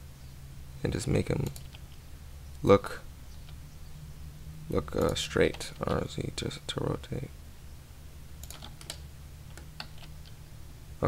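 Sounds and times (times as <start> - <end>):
faint steady low hum: 0.0 - 11.0
keyboard keystroke clicks: 8.4 - 10.4.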